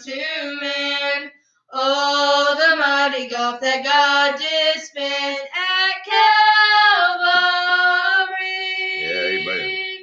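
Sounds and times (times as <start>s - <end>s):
women singing a hymn: 0.0s - 10.0s.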